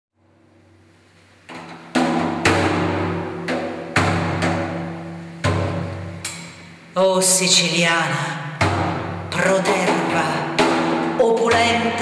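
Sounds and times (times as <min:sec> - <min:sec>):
frame drum strokes: 0:01.0 - 0:06.8, 0:08.5 - 0:12.0.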